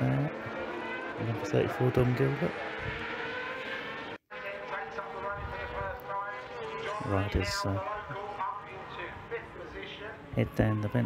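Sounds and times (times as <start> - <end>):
racing motorcycles at high revs: 0.0 - 8.9.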